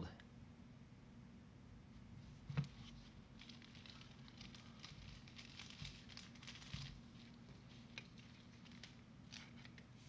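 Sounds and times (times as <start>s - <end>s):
gloved hands rustling a card: 2.6s - 10.0s.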